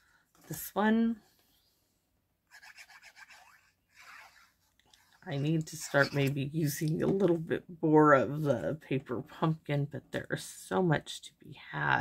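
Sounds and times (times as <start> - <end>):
glue bottle tip scratching card: 2.5 - 4.6.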